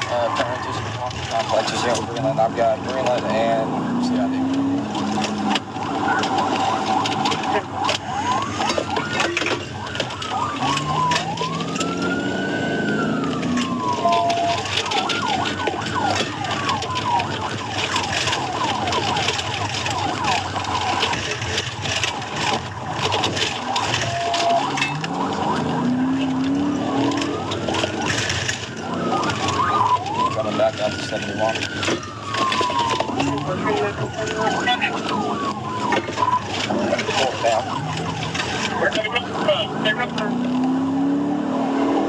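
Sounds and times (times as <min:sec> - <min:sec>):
car engine accelerating: 0:00.0 - 0:08.9, 0:09.8 - 0:42.0
police siren wailing: 0:00.0 - 0:42.0.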